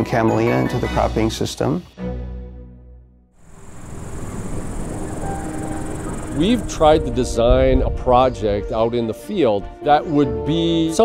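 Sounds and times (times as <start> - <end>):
high-pitched insect chirring: 3.4 - 7.0
continuous low rumble: 3.4 - 8.2.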